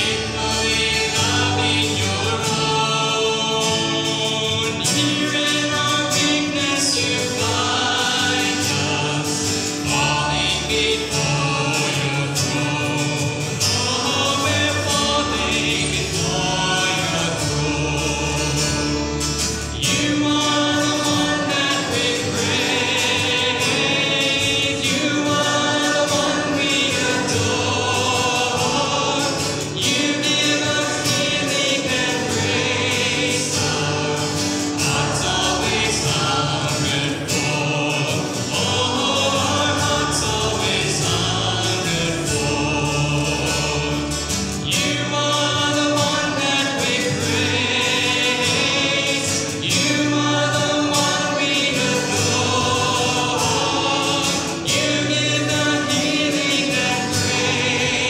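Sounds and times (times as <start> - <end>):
men and women singing together: 0.0 - 58.0
strummed acoustic guitars: 0.0 - 58.0
upright bass: 0.0 - 58.0.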